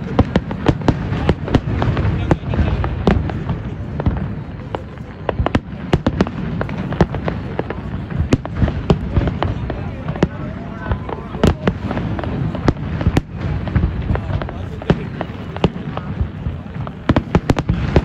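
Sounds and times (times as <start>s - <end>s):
distant fireworks bursting: 0.0s - 18.0s.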